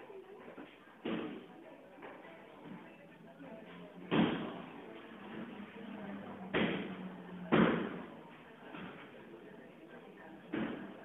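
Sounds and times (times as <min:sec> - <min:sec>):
faint murmur of voices: 0:00.0 - 0:11.0.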